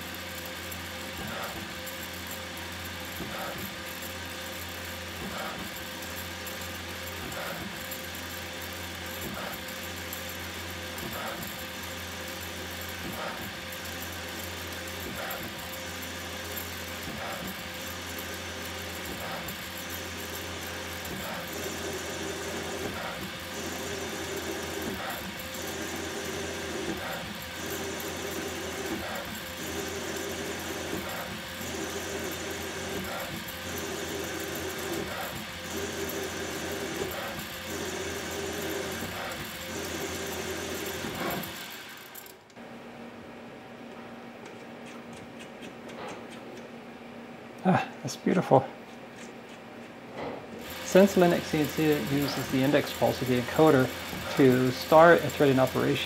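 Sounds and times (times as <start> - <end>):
lathe motor hum: 0.0 - 42.6, 49.3 - 56.0
threading tool cutting metal: 50.6 - 56.0.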